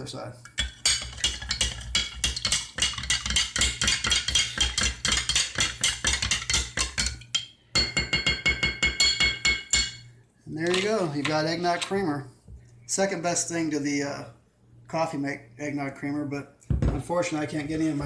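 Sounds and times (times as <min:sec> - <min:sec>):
glass ringing: 0:00.6 - 0:10.1.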